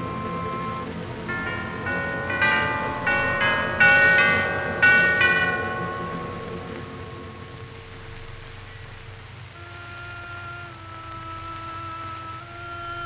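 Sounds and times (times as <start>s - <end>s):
bell chimes ringing: 0.0s - 8.2s
low orchestral music: 0.0s - 13.0s.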